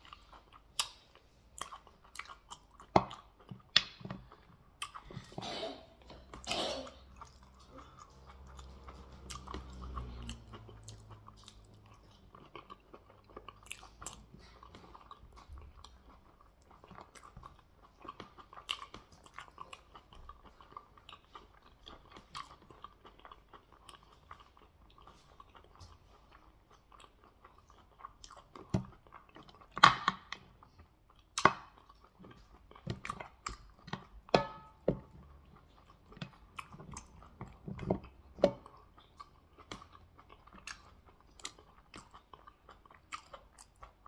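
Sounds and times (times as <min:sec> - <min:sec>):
wet chewing and smacking: 0:00.0 - 0:05.4, 0:06.0 - 0:44.0.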